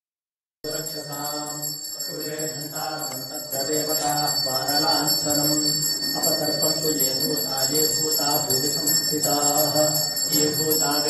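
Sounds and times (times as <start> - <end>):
bell ringing rapidly: 0.7 - 11.0
voices chanting: 0.7 - 11.0.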